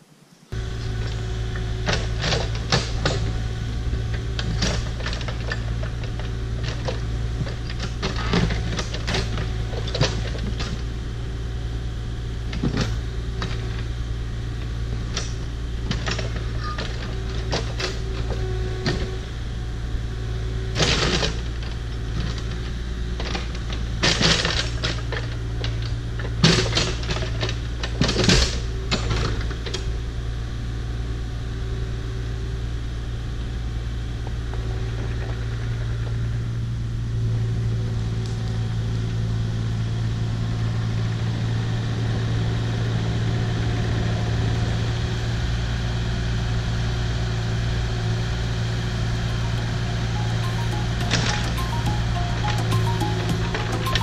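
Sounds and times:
excavator diesel engine running: 0:00.5 - 0:30.2, 0:45.9 - 0:54.0.

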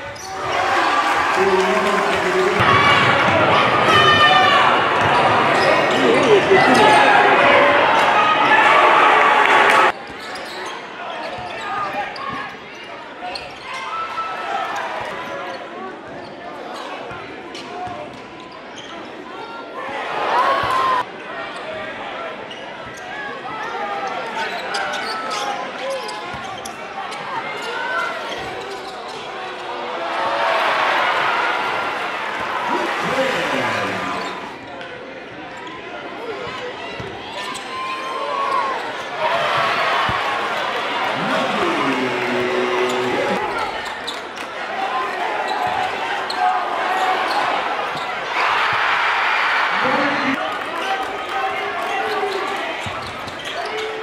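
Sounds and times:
crowd noise: 0:00.0 - 0:54.0
echoing voices: 0:00.6 - 0:09.9, 0:31.7 - 0:34.6, 0:40.9 - 0:43.9.

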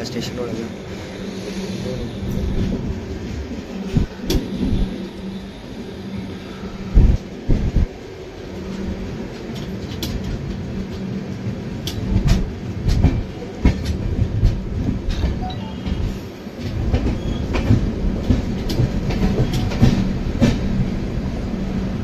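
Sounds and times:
train wheels rumbling on rails: 0:00.0 - 0:22.0
wheels clicking over rail joints: 0:16.6 - 0:20.8.

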